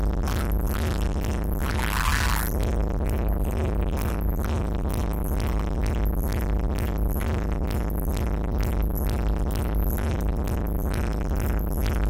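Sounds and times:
bass-heavy techno groove: 0.0s - 12.0s.

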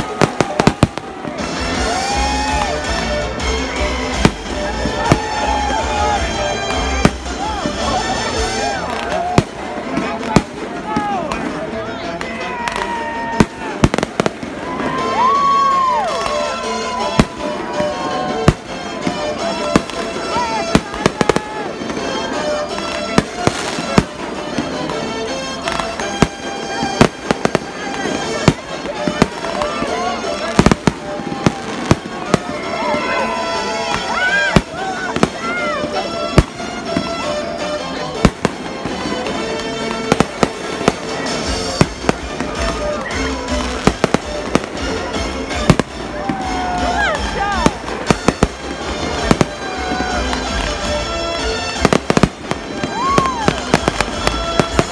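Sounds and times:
fireworks bursting with sharp bangs: 0.0s - 54.9s
music: 0.0s - 54.9s.

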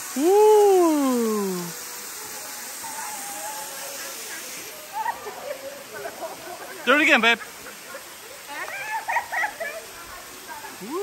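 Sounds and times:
waterfall pouring onto rocks: 0.0s - 11.0s.

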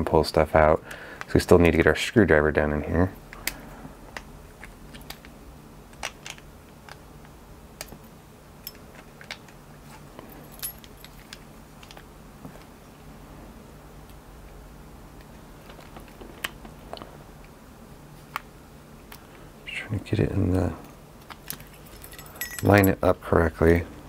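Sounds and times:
keys clinking: 10.2s - 12.0s, 20.8s - 23.1s.

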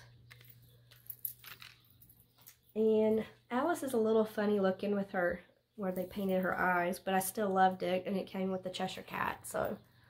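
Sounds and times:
small pins clicking: 0.0s - 2.7s.

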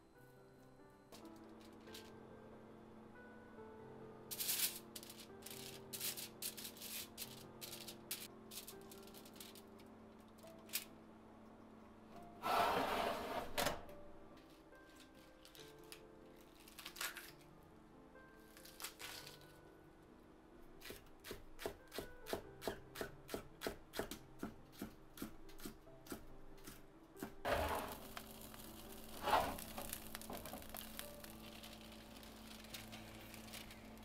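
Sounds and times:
soft background music: 0.0s - 34.0s
aluminium foil crinkling: 4.3s - 10.9s, 14.8s - 17.5s, 18.4s - 19.6s, 27.5s - 34.0s.

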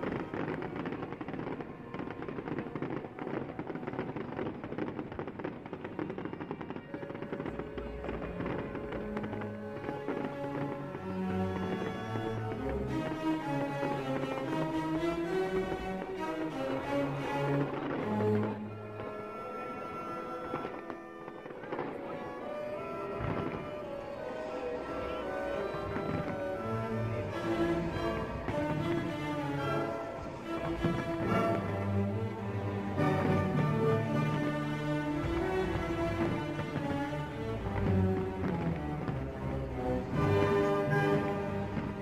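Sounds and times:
fireworks crackling: 0.0s - 42.0s
music: 6.1s - 42.0s.

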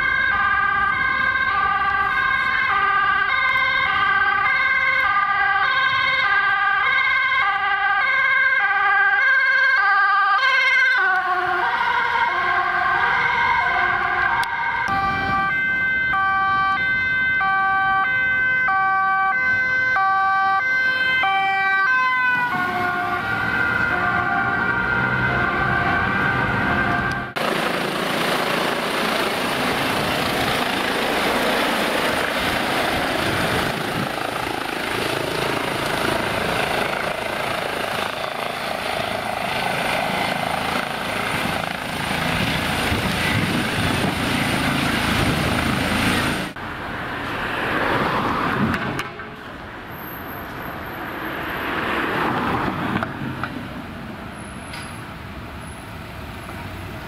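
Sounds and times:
two-tone police siren: 0.0s - 27.6s, 29.2s - 46.6s
helicopter rotors rushing: 25.7s - 46.6s
high turbine whine: 27.2s - 46.6s.

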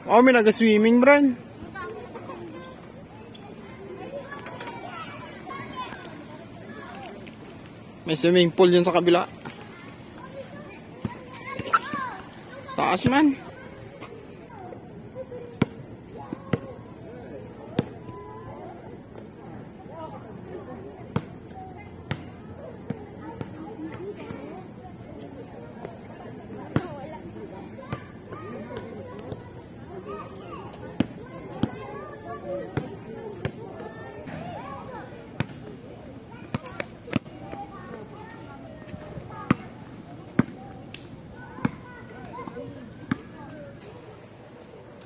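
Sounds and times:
basketball bouncing on hard court: 22.1s - 22.3s.

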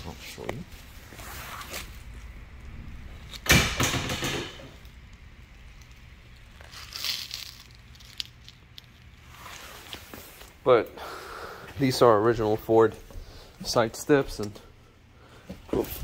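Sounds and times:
faint low hum: 0.0s - 16.0s
rustling and scuffing: 0.3s - 2.2s, 9.2s - 10.6s.

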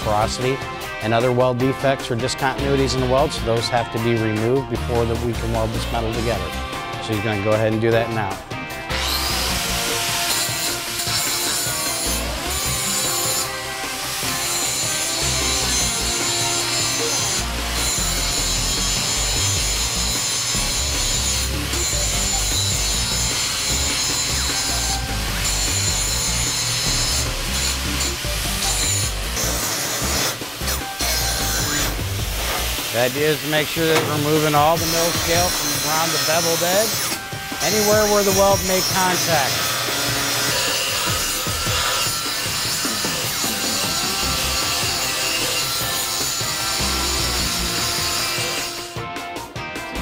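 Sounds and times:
angle grinder grinding steel: 0.0s - 49.1s.

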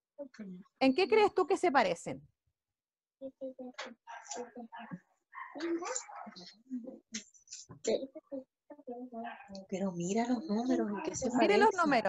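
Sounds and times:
child speaking over video call: 3.2s - 9.6s, 10.4s - 12.0s.

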